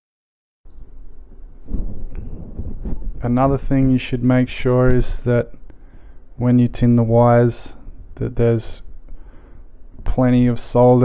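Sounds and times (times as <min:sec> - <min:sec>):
wind buffeting microphone: 0:01.6 - 0:05.2.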